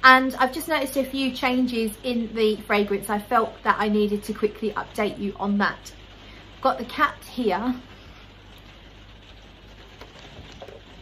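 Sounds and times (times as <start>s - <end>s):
light rain on a roof: 0.0s - 11.0s.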